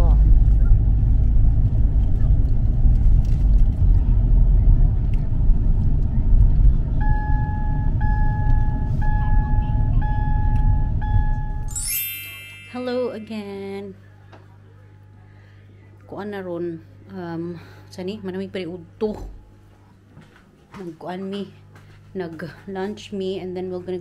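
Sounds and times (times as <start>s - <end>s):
car road noise rumble: 0.0s - 11.7s
electronic beep: 7.0s - 12.7s.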